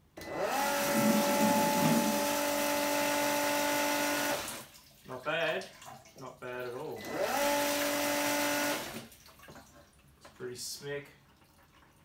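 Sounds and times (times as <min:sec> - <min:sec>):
pump whining: 0:00.1 - 0:04.7, 0:07.0 - 0:09.1.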